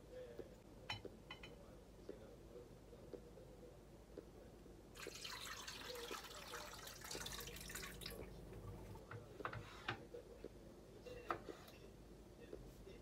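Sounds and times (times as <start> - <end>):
tap water splashing into pot: 5.0 - 8.3.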